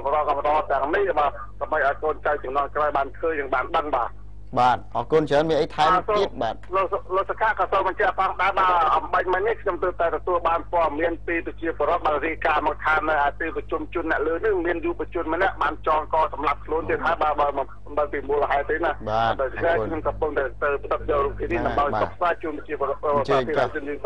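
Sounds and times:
news report speech: 0.0s - 24.0s.

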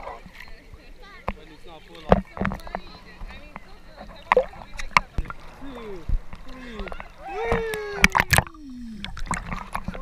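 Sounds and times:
sharp water splashes: 0.0s - 10.0s
water sloshing and lapping: 0.0s - 10.0s.

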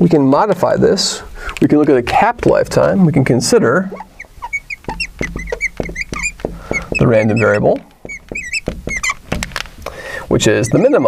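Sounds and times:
marker squeaking on glass: 1.4s - 11.0s
marker tip tapping glass: 4.0s - 9.6s.

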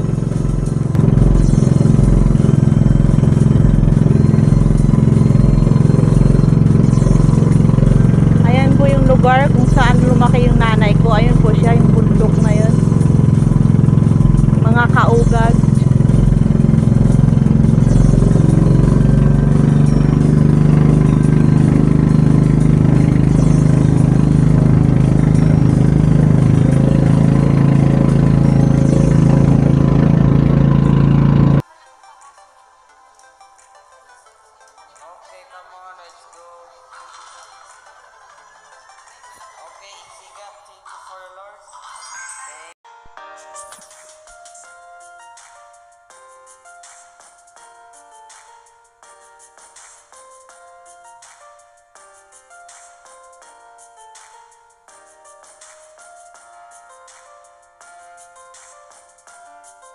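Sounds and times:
boat engine droning: 0.0s - 31.6s.

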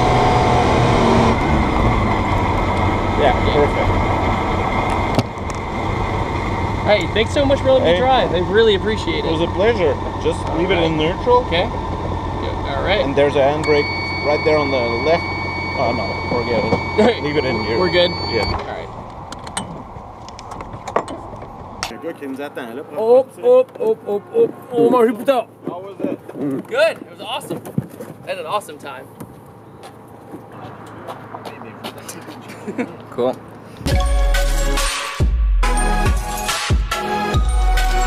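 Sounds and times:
three-wheeler engine rumbling: 0.0s - 33.9s
road noise: 0.0s - 38.0s.

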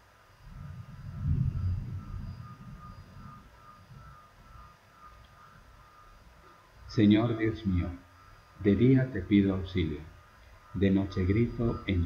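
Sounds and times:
low rumble: 0.4s - 5.9s.

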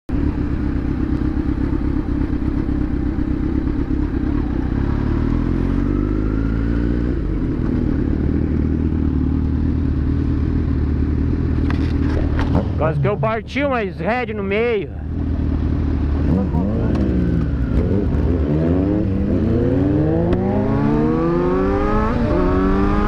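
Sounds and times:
motorcycle engine running: 0.1s - 23.0s.

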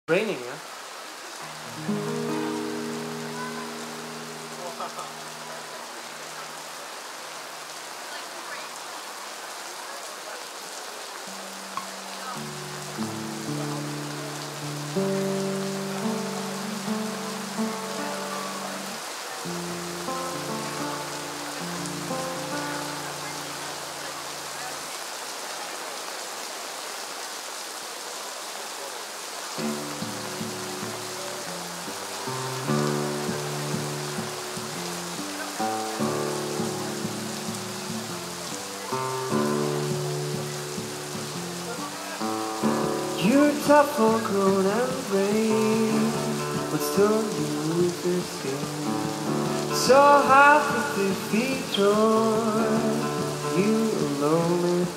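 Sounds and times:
steady rain hiss: 0.1s - 54.9s
classical guitar notes and chords: 1.4s - 6.6s, 11.2s - 24.8s, 29.6s - 54.9s.

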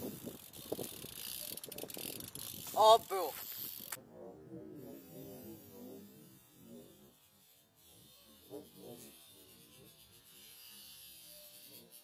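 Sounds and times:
bike hub ticking: 0.0s - 4.0s.

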